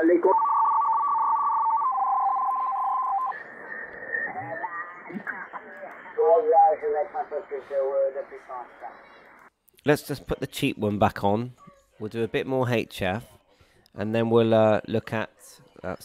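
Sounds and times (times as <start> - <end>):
radio band noise: 0.0 - 9.5
paired whistling tones: 0.2 - 5.2.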